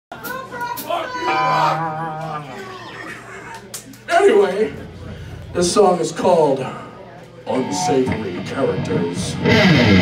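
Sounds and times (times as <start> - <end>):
bar crowd voices: 0.1 - 10.0.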